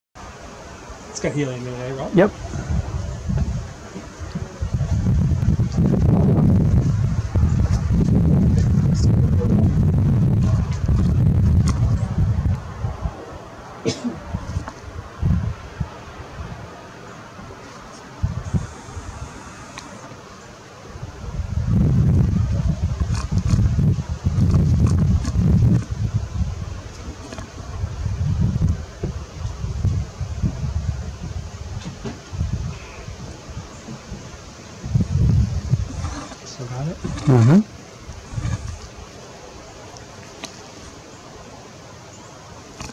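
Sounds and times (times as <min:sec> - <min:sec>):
wind buffeting microphone: 0:00.8 - 0:20.2, 0:20.8 - 0:41.6.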